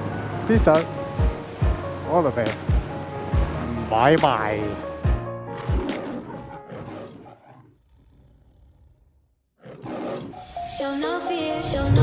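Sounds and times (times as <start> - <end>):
music: 0.0 - 7.0, 10.4 - 12.0
lion roar sound effect: 5.5 - 10.5.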